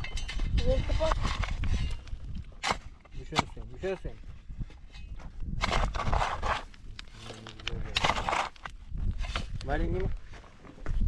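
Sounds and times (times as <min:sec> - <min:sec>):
shovel scraping stony soil: 0:00.0 - 0:09.9.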